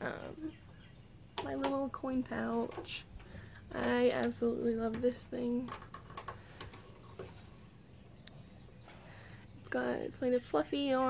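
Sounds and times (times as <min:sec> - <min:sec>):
faint high bird chirps: 0:06.8 - 0:10.1.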